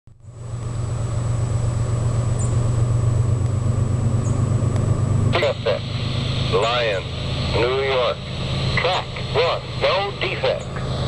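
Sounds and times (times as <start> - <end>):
freight train rumble: 0.1 - 11.0.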